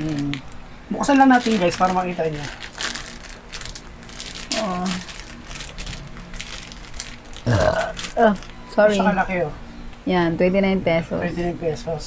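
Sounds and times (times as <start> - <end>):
plastic wrapper crinkling: 0.0 - 8.6.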